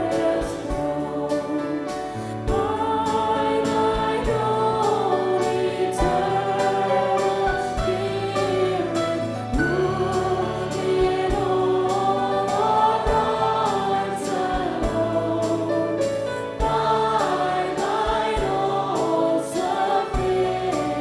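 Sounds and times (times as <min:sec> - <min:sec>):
woman singing a hymn: 0:00.0 - 0:15.8
congregation singing: 0:00.0 - 0:21.0
digital piano chords: 0:00.0 - 0:21.0.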